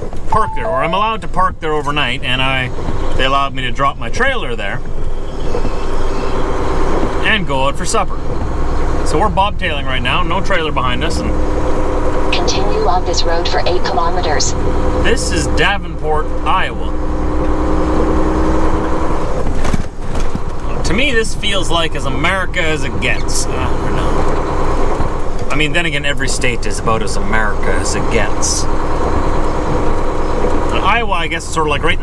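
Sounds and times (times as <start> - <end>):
diesel engine rumble: 0.0 - 32.0.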